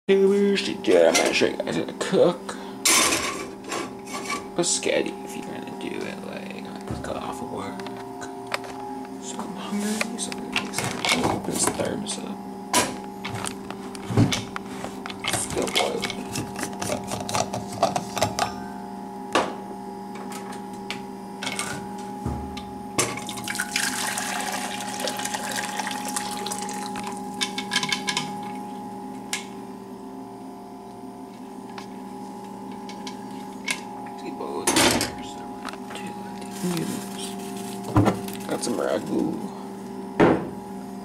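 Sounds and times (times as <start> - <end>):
steady hum: 0.1 - 41.0
water pouring into a saucepan: 23.3 - 26.9.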